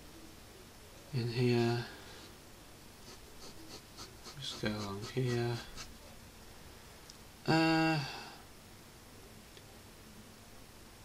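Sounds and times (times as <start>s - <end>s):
pen scratching on paper: 3.0s - 6.0s.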